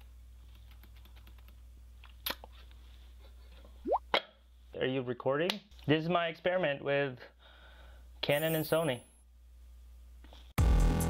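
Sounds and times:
man speaking: 8.2 - 9.0.

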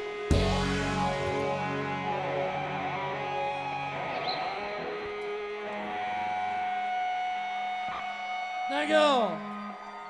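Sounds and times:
band chord ringing out: 0.3 - 4.2.

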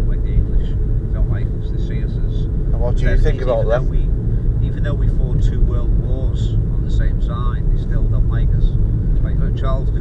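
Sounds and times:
car engine and road noise: 0.0 - 10.0
low talk: 0.0 - 10.0.

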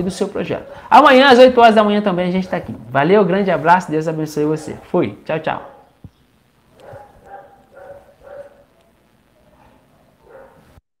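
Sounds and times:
dog yipping: 5.6 - 6.0, 6.8 - 8.8, 9.4 - 10.7.

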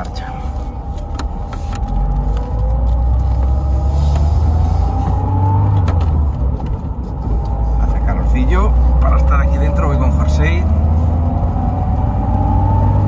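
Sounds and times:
deep engine rumble: 0.0 - 13.0
whine climbing in pitch: 0.0 - 13.0.

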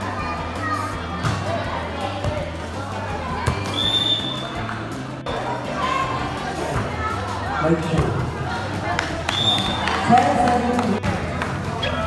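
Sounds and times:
background music: 0.0 - 12.0
crowd voices: 0.0 - 12.0.

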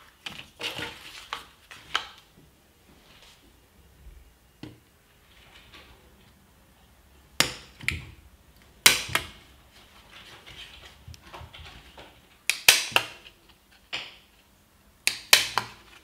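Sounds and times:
paper rustling: 0.0 - 2.2.

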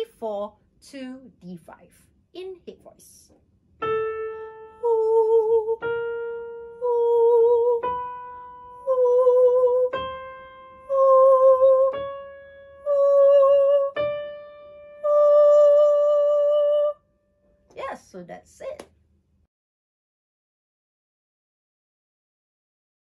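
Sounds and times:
piano notes: 3.7 - 18.0
woman singing a rising scale: 4.7 - 5.9, 6.7 - 8.0, 8.8 - 10.0, 12.8 - 14.0, 15.0 - 17.0.

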